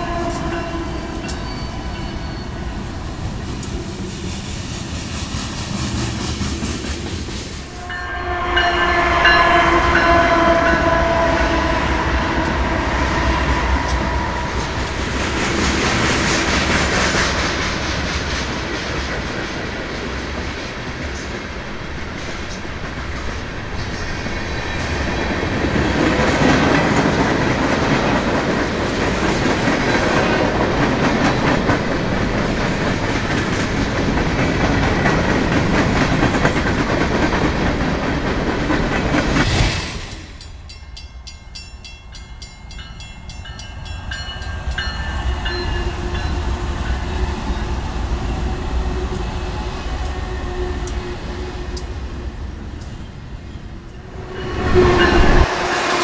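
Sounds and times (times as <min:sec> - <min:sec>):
train horn: 0:00.0 - 0:02.5, 0:07.7 - 0:14.9, 0:48.5 - 0:51.9
freight train rolling past: 0:00.0 - 0:56.0.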